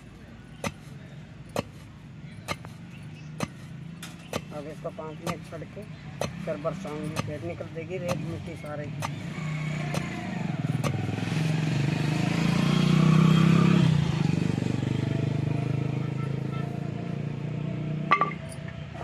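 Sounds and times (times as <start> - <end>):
vehicle engine passing by: 2.4 - 19.0.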